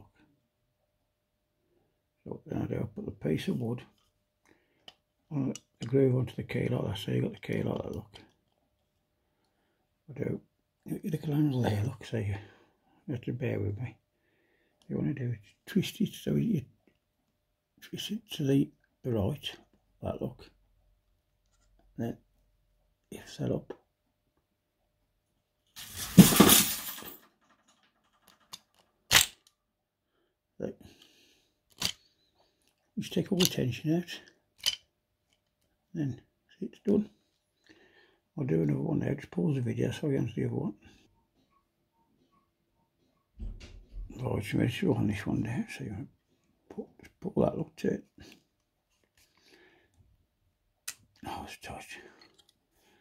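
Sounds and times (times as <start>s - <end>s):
faint handling noise: 21.2s - 22.0s, 30.9s - 35.8s, 48.2s - 50.2s, 51.0s - 53.0s
sharp metallic clicks: 28.5s - 29.5s.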